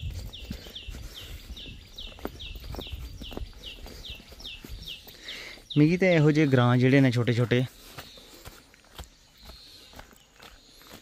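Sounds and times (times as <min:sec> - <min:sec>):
footsteps on dirt and stone path: 0:00.0 - 0:11.0.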